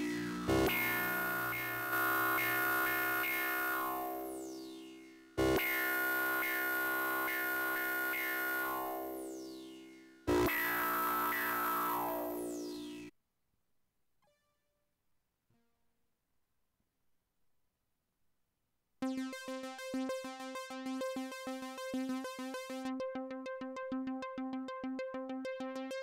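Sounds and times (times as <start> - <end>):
synthesizer chord: 0.0 - 13.1, 19.0 - 25.9
high tone sweeping downward: 5.6 - 13.1.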